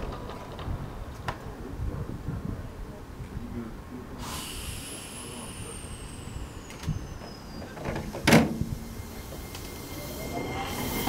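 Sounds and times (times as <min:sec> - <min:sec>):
train high whine falling: 0:04.2 - 0:11.0.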